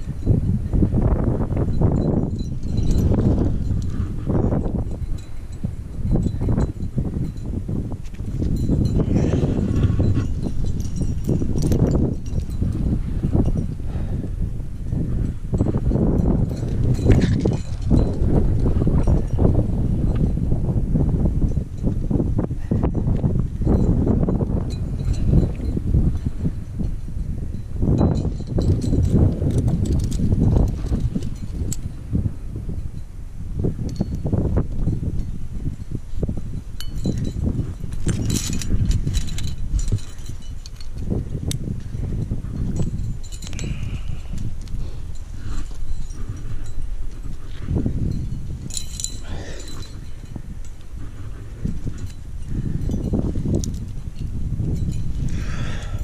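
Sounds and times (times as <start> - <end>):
metal climbing hardware clinking: 0.0 - 20.6, 21.2 - 56.0.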